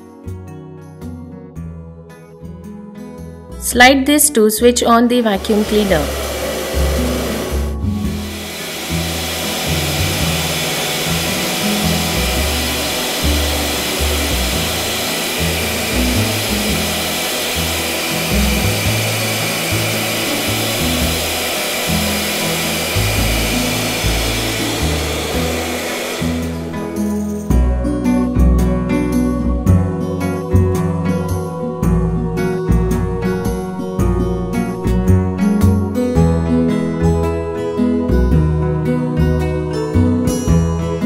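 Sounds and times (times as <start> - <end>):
handheld vacuum cleaner running: 5.2 - 27.5.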